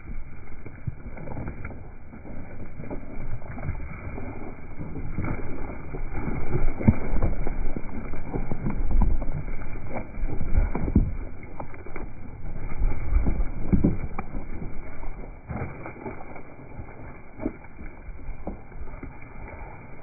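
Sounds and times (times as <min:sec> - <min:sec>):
rustling of grass and wool: 0:00.0 - 0:20.0
sheep hoof thuds on grass: 0:00.0 - 0:20.0.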